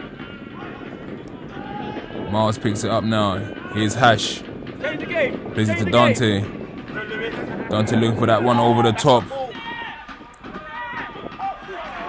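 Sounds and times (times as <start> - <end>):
crowd background: 0.0 - 12.0
distant shouts and calls: 0.0 - 12.0.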